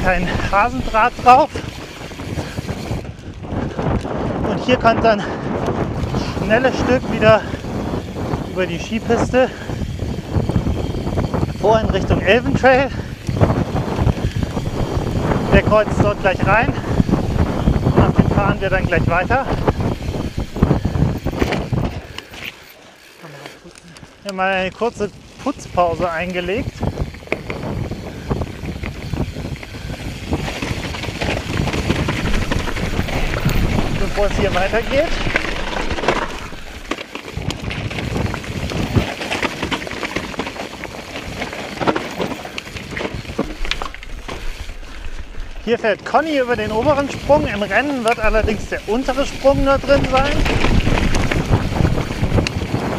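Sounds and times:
wind on microphone: 0:00.0 - 0:22.5, 0:24.6 - 0:52.9
mountain bike rolling over rough trail: 0:00.0 - 0:52.9
bike frame knocks and rattles: 0:18.6 - 0:22.6, 0:26.8 - 0:44.8, 0:46.8 - 0:52.9.

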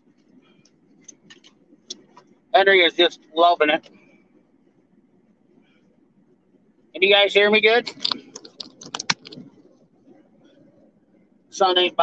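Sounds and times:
phone handling clicks and taps: 0:07.9 - 0:09.5.

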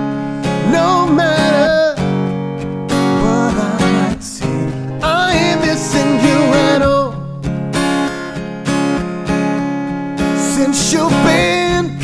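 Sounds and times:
acoustic guitar strumming chords: 0:00.0 - 0:12.0
man singing wordless melody: 0:00.4 - 0:02.2, 0:03.0 - 0:07.4, 0:10.4 - 0:12.0.

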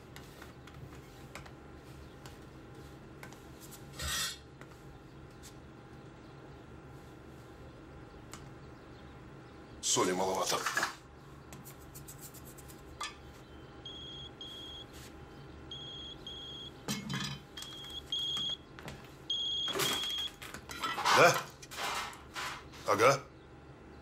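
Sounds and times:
mobile phone ringing beeps: 0:13.9 - 0:14.9, 0:15.7 - 0:16.7, 0:17.6 - 0:18.6, 0:19.3 - 0:20.4.

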